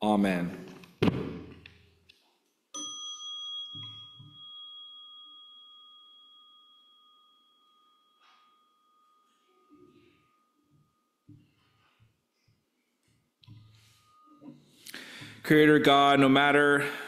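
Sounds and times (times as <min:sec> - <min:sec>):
singing bowl ringing: 0:02.8 - 0:16.8.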